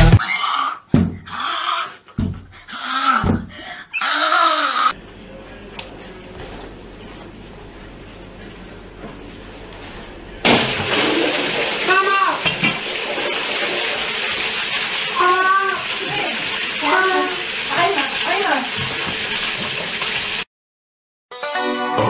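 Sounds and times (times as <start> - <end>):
water gushing: 10.5 - 20.5.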